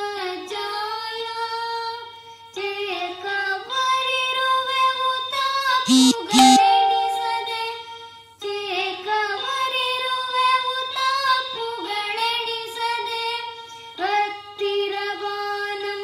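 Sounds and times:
boy singing devotional song: 0.0 - 7.8, 8.4 - 16.0
toy keyboard holding notes: 5.9 - 7.6.

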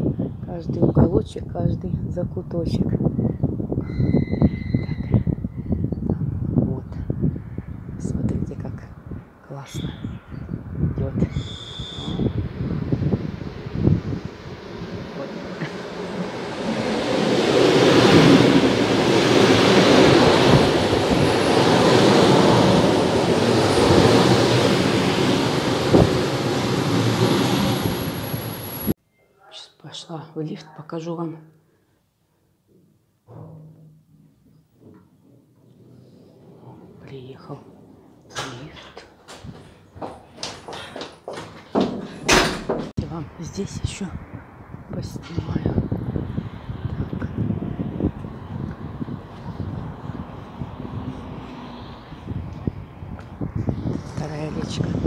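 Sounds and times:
electric train passing: 10.6 - 29.0, 44.2 - 55.0
footsteps on hard floor: 39.3 - 42.3.

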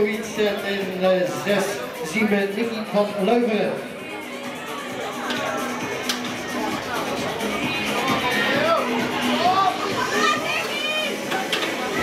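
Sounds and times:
chatter of spectators: 0.0 - 12.0
children's voices: 4.0 - 12.0.

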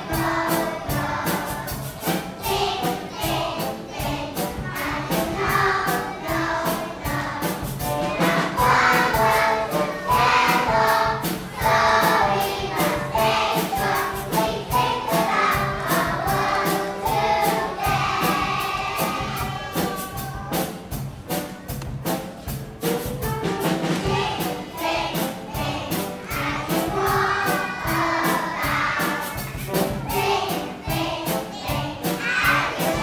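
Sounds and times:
children's choir singing: 0.0 - 21.5, 23.8 - 33.0
backing track with steady beat: 0.0 - 33.0.

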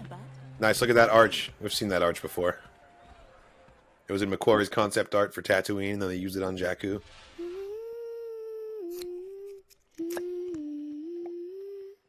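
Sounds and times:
person humming a slow tune: 7.4 - 12.0.

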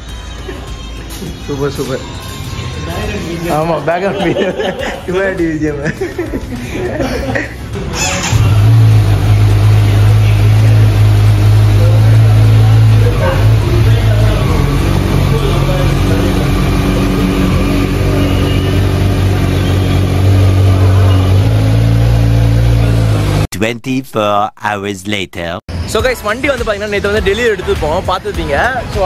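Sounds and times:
motorcycle engine idling: 8.2 - 21.8.

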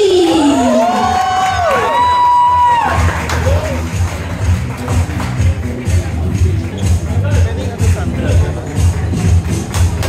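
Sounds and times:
crowd cheering and whooping: 0.0 - 3.8.

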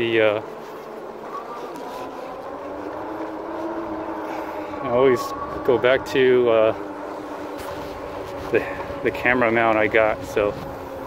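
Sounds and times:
electric hub motor whining: 0.0 - 11.0
wind noise: 2.3 - 11.0.

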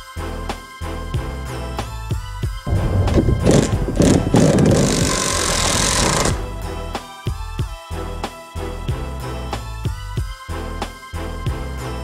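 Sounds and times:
background music with steady beat: 0.0 - 12.0
drill boring into wood: 2.7 - 6.5.

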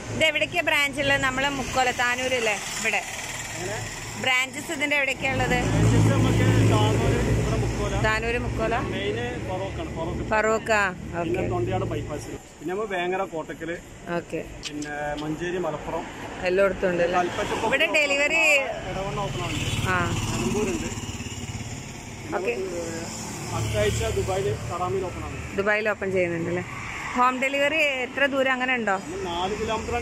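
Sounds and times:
auto-rickshaw engine passing: 0.0 - 13.8, 15.4 - 30.0.

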